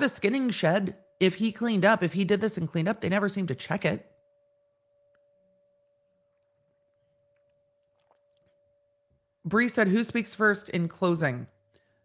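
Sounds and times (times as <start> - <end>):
faint steady high tone: 0.0 - 12.0.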